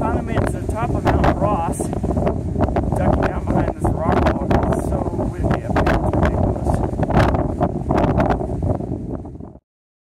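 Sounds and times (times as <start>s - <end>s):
wind buffeting microphone: 0.0s - 9.6s.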